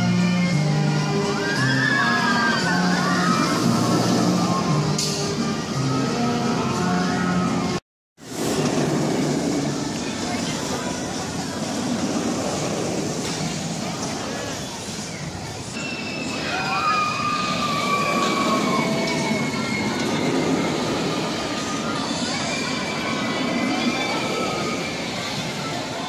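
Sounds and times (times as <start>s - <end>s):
roller coaster rumbling roar: 0.0s - 26.0s
high squealing tones: 15.8s - 25.3s.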